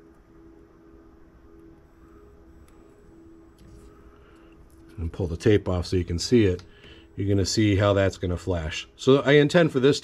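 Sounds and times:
faint pulsing low hum: 0.0s - 10.0s.

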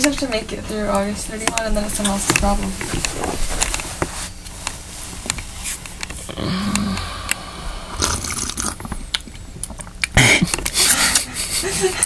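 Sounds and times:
clicks and light taps: 0.9s - 6.2s
clothing rubbing on microphone: 2.4s - 6.0s.

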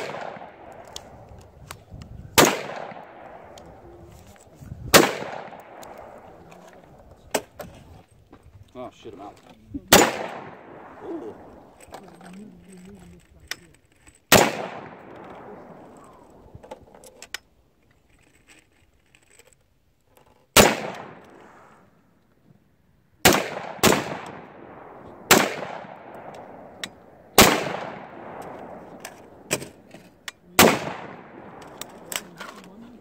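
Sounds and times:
rifle shots: 0.0s - 1.3s, 2.3s - 3.8s, 4.9s - 6.5s, 9.9s - 11.8s, 14.3s - 16.4s, 20.5s - 21.4s, 23.2s - 32.4s.

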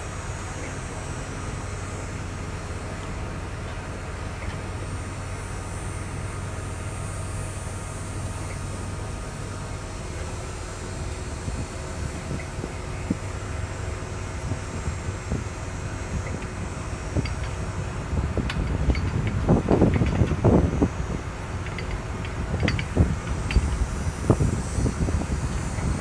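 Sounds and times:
low motor hum: 0.0s - 26.0s
wind buffeting microphone: 8.2s - 26.0s.

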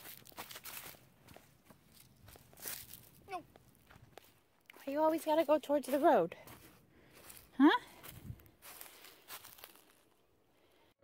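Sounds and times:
footsteps on dry leaves and gravel: 0.0s - 10.3s.

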